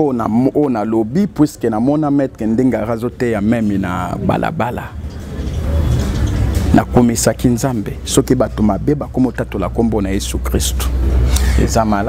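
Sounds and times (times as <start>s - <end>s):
vehicle engine rumble: 2.2s - 12.0s.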